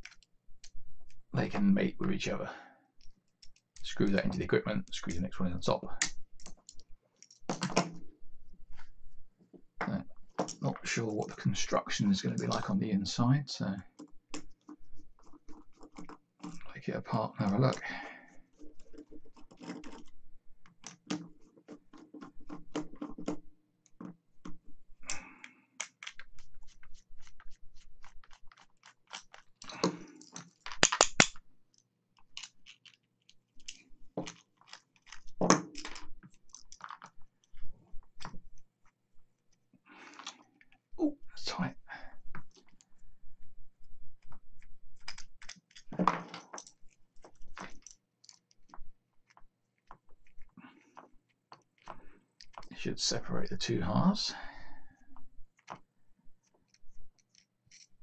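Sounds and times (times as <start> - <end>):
metal connectors clicking and knocking: 0.0 - 1.2, 18.6 - 40.8, 44.1 - 52.8.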